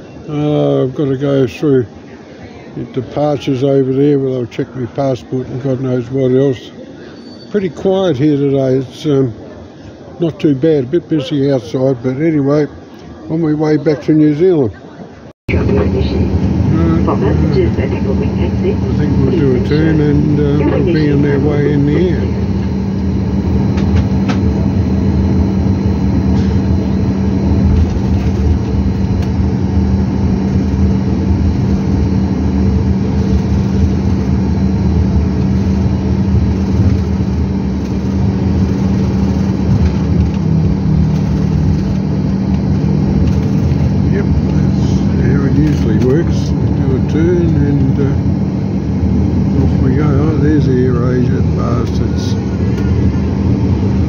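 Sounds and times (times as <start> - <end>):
muffled voices: 0.0 - 40.4, 41.2 - 54.0
airliner engine drone: 15.5 - 54.0
constant low hum: 15.5 - 54.0.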